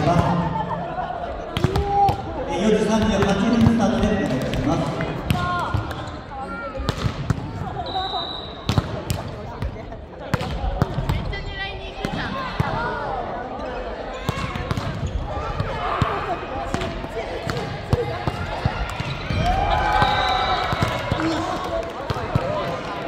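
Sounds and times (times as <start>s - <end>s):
voices talking in gymnasium: 0.0s - 23.0s.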